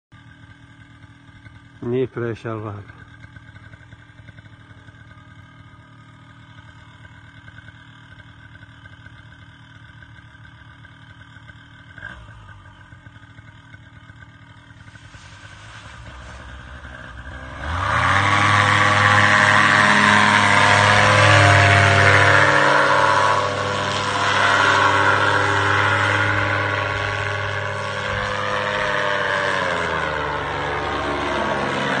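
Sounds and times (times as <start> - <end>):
paramotor engine and propeller: 0.1 - 32.0.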